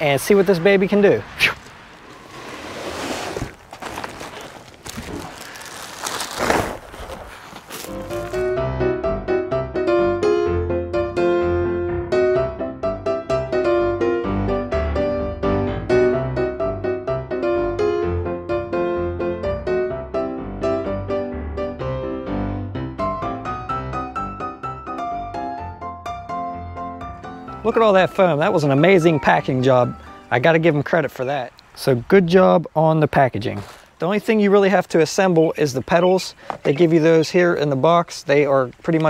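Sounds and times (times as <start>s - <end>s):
plastic wrapping rustling: 1.6s - 8.5s
cardboard box scraping: 1.8s - 8.5s.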